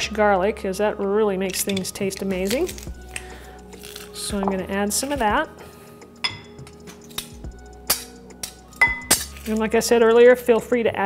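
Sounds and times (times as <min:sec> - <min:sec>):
faint background music: 0:00.0 - 0:11.0
metal clinking against ceramic bowl: 0:01.5 - 0:03.2, 0:06.2 - 0:07.2, 0:07.9 - 0:09.6.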